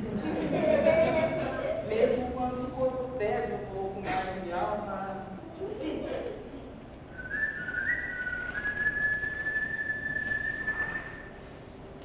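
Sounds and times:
person whistling: 7.1 - 11.4.

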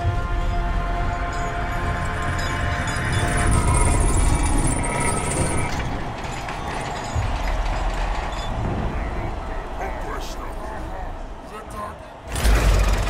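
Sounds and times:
film music tones: 0.0 - 13.0
mechanical grinding: 1.8 - 9.7, 12.3 - 13.0.

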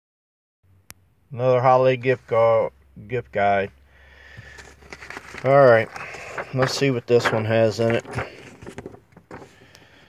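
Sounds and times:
paper handling noise: 4.3 - 10.0
paper pages rustling: 4.4 - 10.0.

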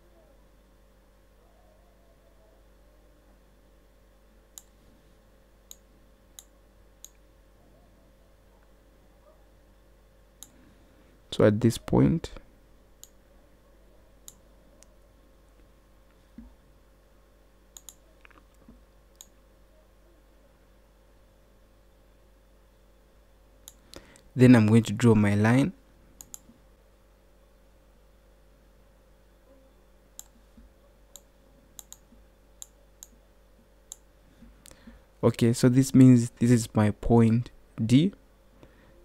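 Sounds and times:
faint steady hum: 0.0 - 39.0
computer mouse clicks: 4.5 - 4.8, 17.7 - 19.4, 26.2 - 26.5, 30.2 - 30.4, 31.1 - 33.2.

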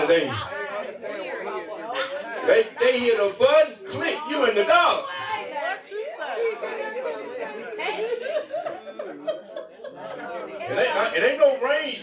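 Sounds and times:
congregation speaking together: 0.0 - 12.0.

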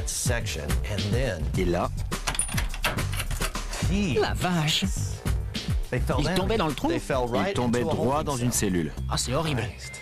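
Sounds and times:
wooden trapdoor rattling: 2.2 - 3.6.

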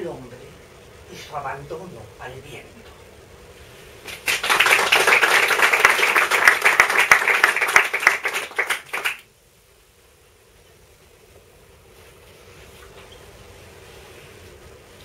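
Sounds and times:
small audience applauding: 4.0 - 9.3.

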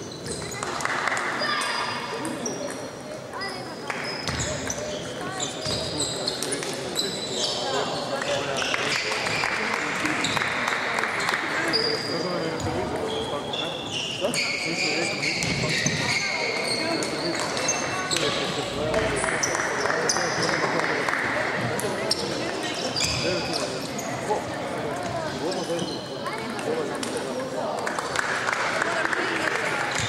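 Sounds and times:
murmur of voices: 0.0 - 30.0.

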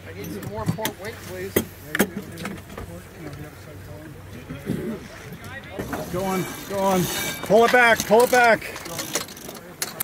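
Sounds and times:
people talking quietly: 0.0 - 10.0.

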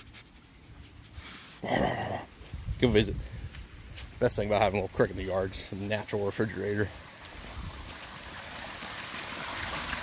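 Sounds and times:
water pouring into pool: 6.9 - 10.0.

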